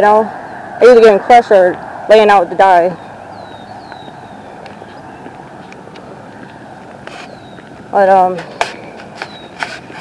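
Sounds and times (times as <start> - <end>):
distant engine rumble: 0.0 - 10.0.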